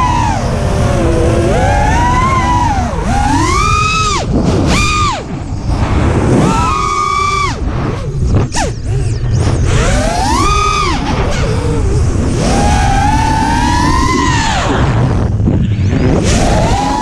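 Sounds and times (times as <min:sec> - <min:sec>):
quadcopter motors whining: 0:00.0 - 0:17.0
wind rumble on microphone: 0:00.0 - 0:17.0.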